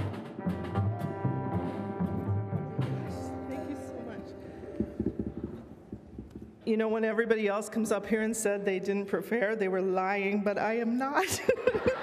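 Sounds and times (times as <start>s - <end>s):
orchestral music: 0.0s - 5.8s
light knocks and taps: 4.8s - 6.6s.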